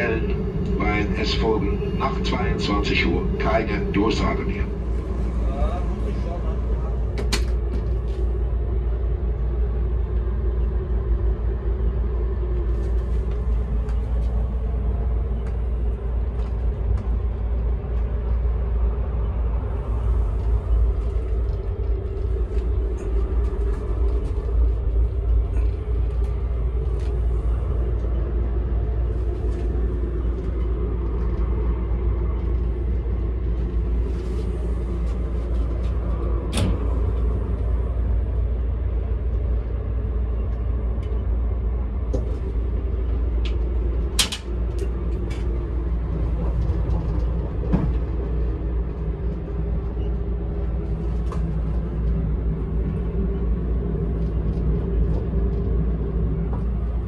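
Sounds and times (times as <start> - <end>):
train rumbling: 0.0 - 57.0.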